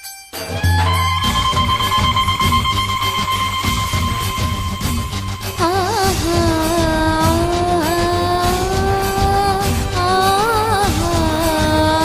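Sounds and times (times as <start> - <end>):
song accompaniment: 0.0 - 12.0.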